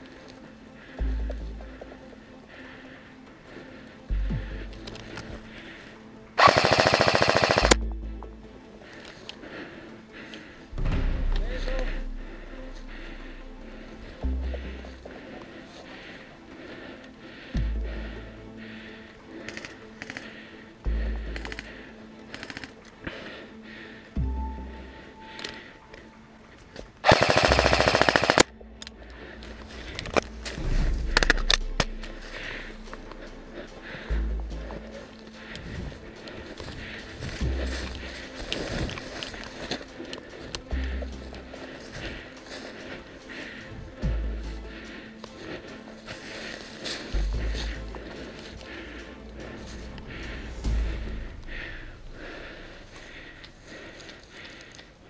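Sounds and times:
airsoft rifle full-auto burst: 6.4 - 7.8, 27.0 - 28.5.

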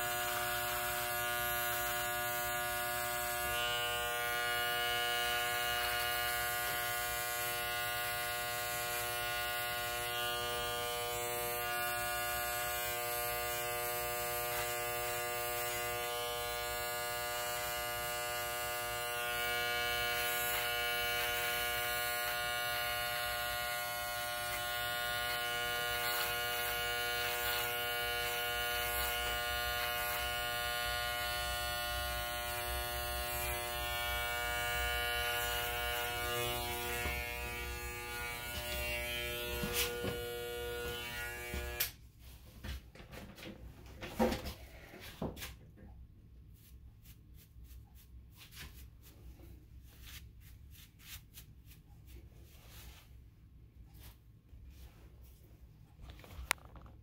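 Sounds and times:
electric hair clipper humming: 0.0 - 42.0.

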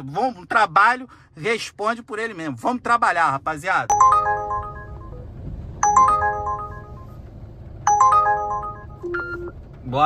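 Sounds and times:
car low rumble: 0.0 - 10.0
app alert chime: 3.9 - 7.2, 7.9 - 9.5.

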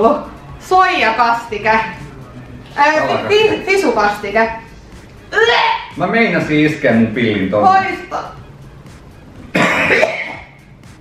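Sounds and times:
man coughing: 9.5 - 10.6.

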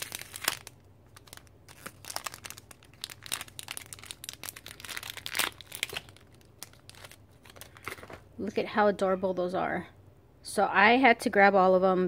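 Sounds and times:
plastic bag crinkling: 0.0 - 8.3.

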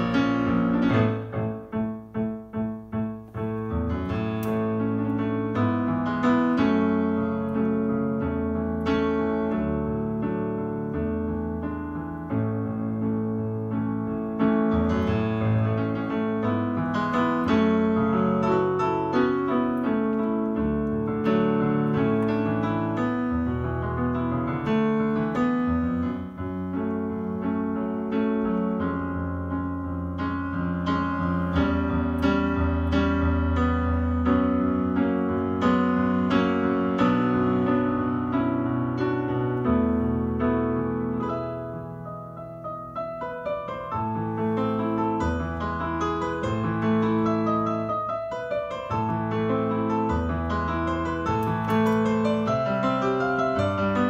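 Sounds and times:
solo piano chords: 0.0 - 54.0.

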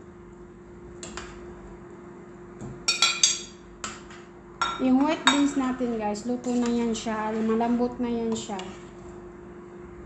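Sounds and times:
metal spoon clinking on pot: 2.9 - 3.6.

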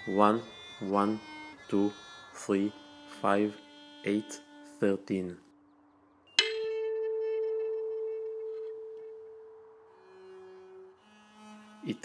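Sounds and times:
tuning fork ringing: 6.3 - 10.0.

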